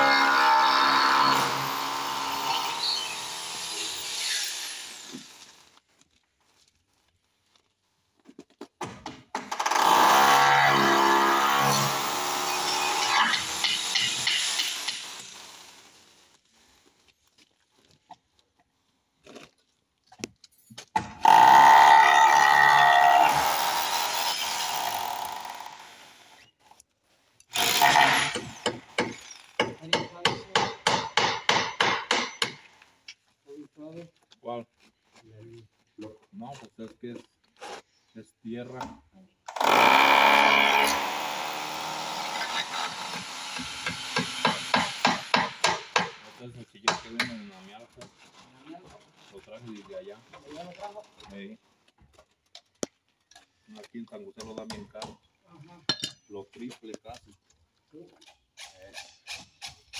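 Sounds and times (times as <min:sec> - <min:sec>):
power drill boring into wood: 0:00.0 - 0:05.6, 0:09.5 - 0:16.0, 0:21.2 - 0:26.4, 0:27.5 - 0:29.6, 0:39.5 - 0:45.4.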